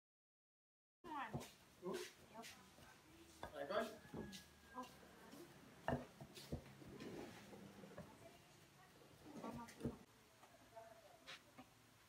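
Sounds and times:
knife chopping on wooden board: 5.8s - 6.8s.

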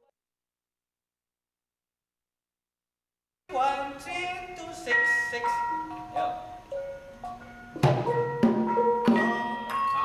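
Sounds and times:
gamelan metallophones struck: 4.9s - 10.0s.

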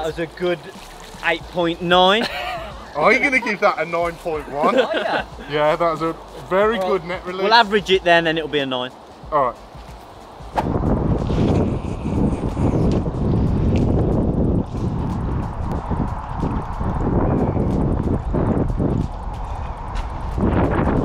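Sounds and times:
wind buffeting microphone: 9.2s - 21.0s.

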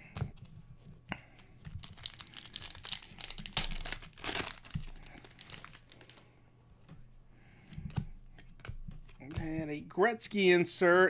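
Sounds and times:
foil wrapper tearing and crinkling: 1.7s - 6.2s.

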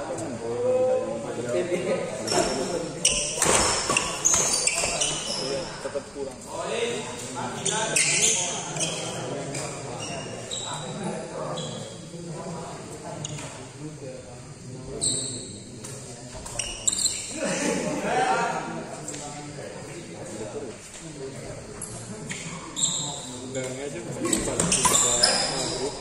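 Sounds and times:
people talking: 0.0s - 26.0s.

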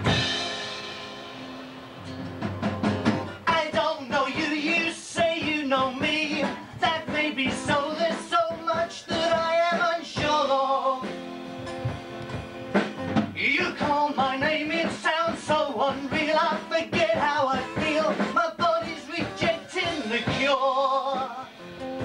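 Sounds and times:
drums: 0.0s - 22.0s
rock band playing: 0.0s - 22.0s.

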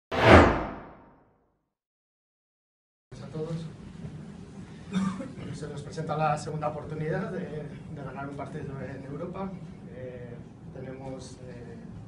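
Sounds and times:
whoosh sound effect: 0.1s - 1.1s.

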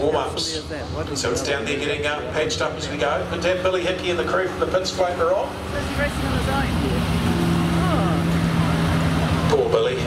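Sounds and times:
racing car engine high revs: 2.5s - 10.0s.

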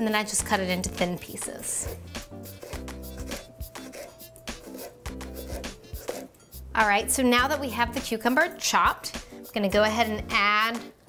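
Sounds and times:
background music: 0.0s - 11.0s
knife slicing on cutting board: 1.8s - 6.4s.

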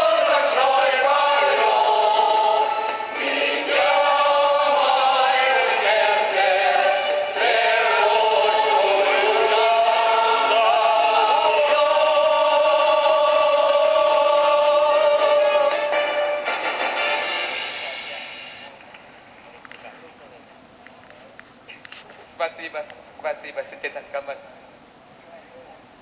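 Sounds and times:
group singing with accordion: 0.0s - 16.8s.

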